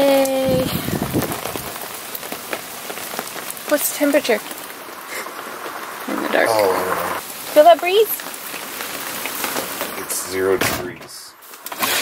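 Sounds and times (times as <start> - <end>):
steady rain falling: 0.0 - 12.0
water drips and patters: 0.0 - 12.0.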